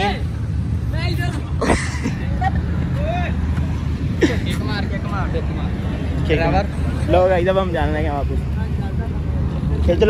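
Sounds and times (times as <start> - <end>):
roadside traffic rumble: 0.0 - 10.0.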